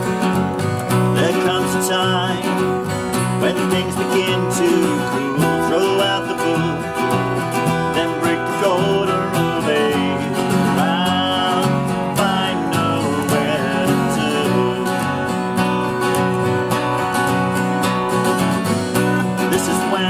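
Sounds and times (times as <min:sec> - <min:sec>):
acoustic guitars strumming chords: 0:00.0 - 0:20.0
sliding guitar lead line: 0:00.0 - 0:20.0.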